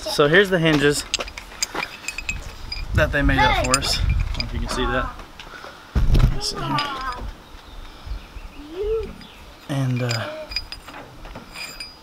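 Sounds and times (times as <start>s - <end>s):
metal hinges clicking and tapping: 0.7s - 4.9s, 6.6s - 7.4s, 9.2s - 12.0s.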